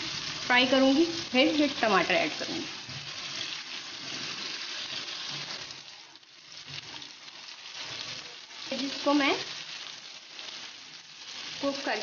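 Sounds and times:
spatula stirring in a wok: 0:00.0 - 0:12.0
vegetables sizzling in hot oil: 0:00.0 - 0:12.0.

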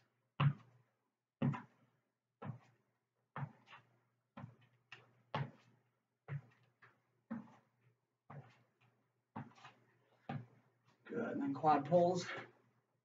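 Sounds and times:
footsteps thudding on floor: 0:03.4 - 0:03.6.

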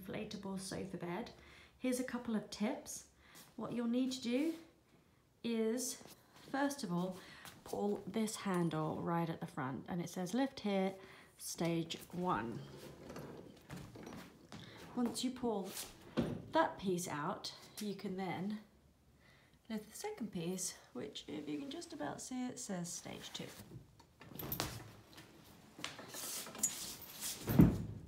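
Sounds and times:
sofa bed frame being pulled out: 0:12.5 - 0:14.5.

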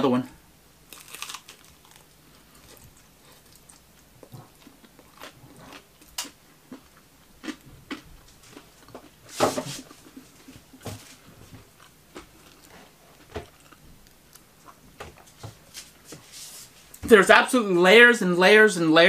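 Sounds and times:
person chewing crispy food: 0:00.9 - 0:09.3, 0:11.6 - 0:15.3.

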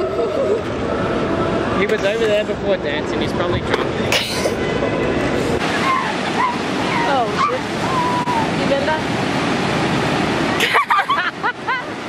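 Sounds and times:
ocean waves breaking: 0:00.0 - 0:12.0.

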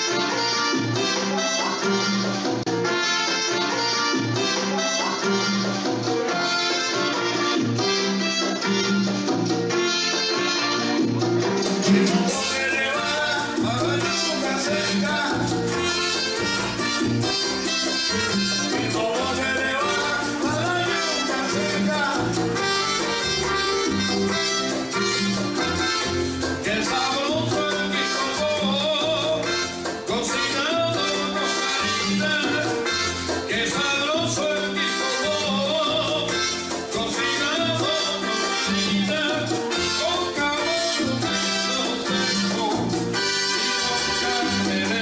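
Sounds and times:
latin music on electronic keyboard: 0:00.0 - 0:45.0.

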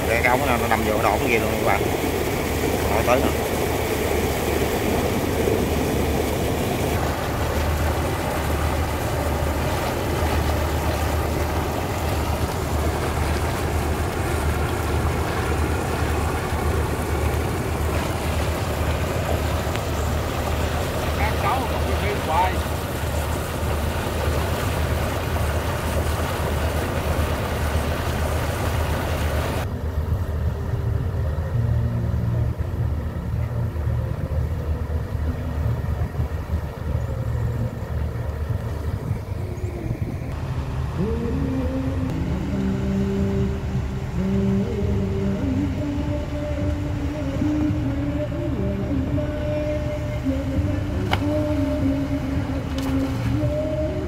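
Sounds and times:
water gushing from pipeline: 0:00.0 - 0:30.4
pumping machinery drone: 0:00.0 - 0:54.0.

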